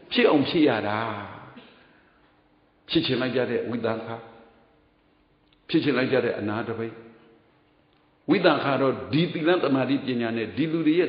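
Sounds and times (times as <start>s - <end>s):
man speaking: 0.0s - 1.6s, 2.9s - 4.5s, 5.6s - 7.2s, 8.3s - 11.0s.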